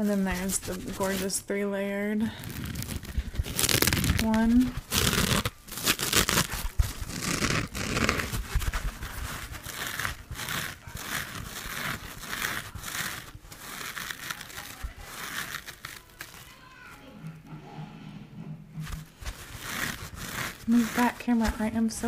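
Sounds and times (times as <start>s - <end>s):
foam sponge scrunching: 0.0s - 1.6s, 2.2s - 17.0s, 18.8s - 22.0s.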